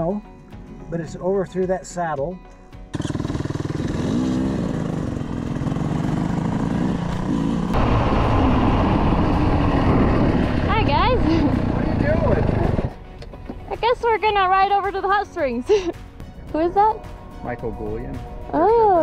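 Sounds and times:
dirt bike engines running: 2.9 - 15.2
steady rushing noise: 6.4 - 12.9.

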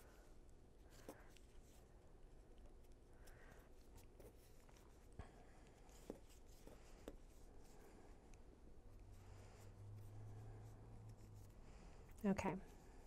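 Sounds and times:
knitting needles rubbing yarn: 0.0 - 2.0, 2.6 - 13.0.

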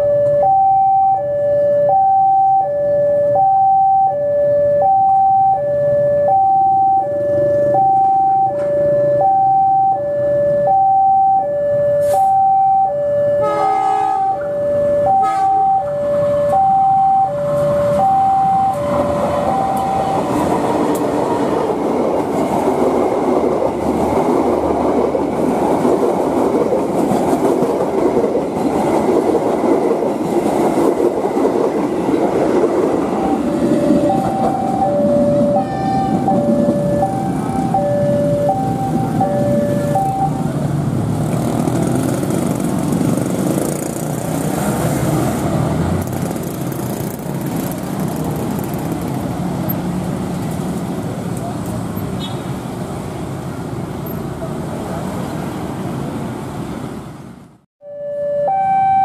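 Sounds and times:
two-tone crossing alarm: 0.0 - 20.6, 32.8 - 40.5, 57.8 - 59.0
train wheels rumbling on rails: 17.5 - 52.2.

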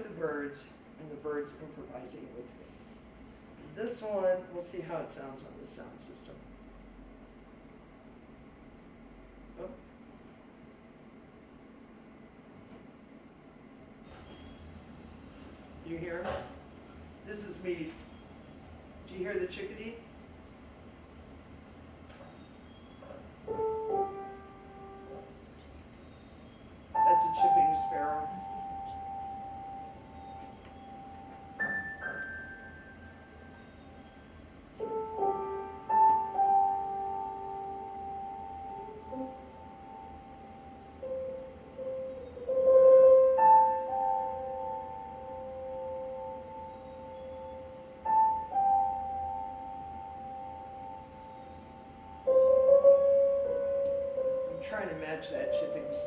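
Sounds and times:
recording hiss: 0.0 - 56.0
slow piano improvisation: 9.2 - 10.2, 13.8 - 19.9, 20.7 - 56.0.

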